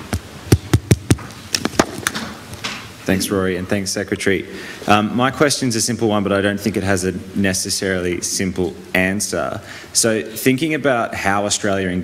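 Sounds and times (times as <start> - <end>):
microphone handling thumps: 0.0 - 2.4.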